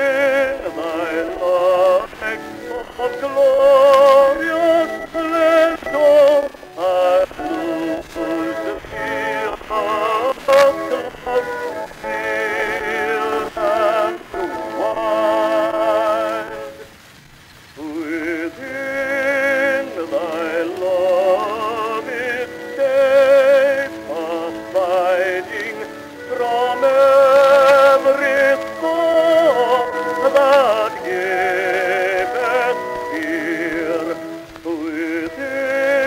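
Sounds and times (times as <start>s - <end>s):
baritone singing with orchestra: 0.0s - 16.9s, 17.8s - 36.0s.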